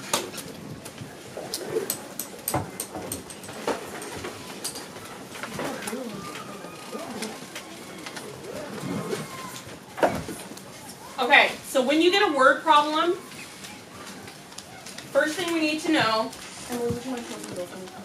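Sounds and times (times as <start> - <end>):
low murmured voices: 0.0 - 18.0
papers and notebooks moving: 3.2 - 11.6, 12.9 - 18.0.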